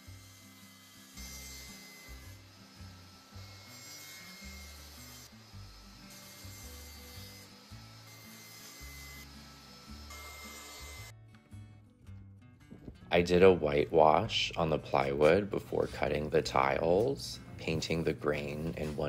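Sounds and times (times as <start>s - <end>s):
power saws cutting plywood: 0.0s - 11.1s
quiet background music: 0.0s - 19.0s.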